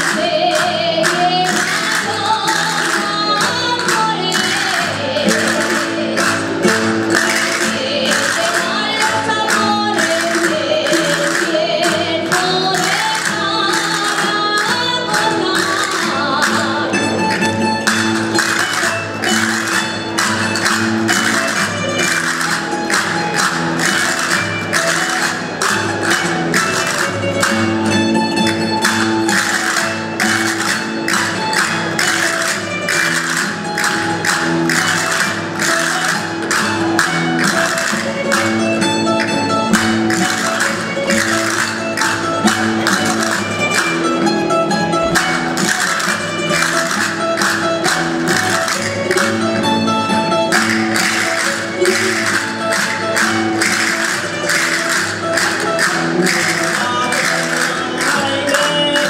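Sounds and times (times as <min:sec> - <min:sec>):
person singing: 0:00.0 - 0:06.4, 0:55.7 - 0:59.0
hand percussion rattling: 0:00.0 - 0:59.0
plucked string ensemble playing: 0:00.0 - 0:59.0.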